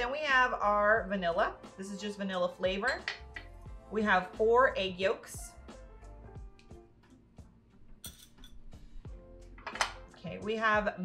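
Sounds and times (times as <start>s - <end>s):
soft background music: 0.0s - 11.0s
light clinks against glass bowl: 8.0s - 8.6s.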